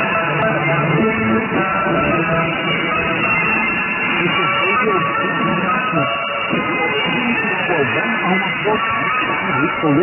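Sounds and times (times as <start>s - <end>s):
guitar-led music on shortwave radio: 0.0s - 10.0s.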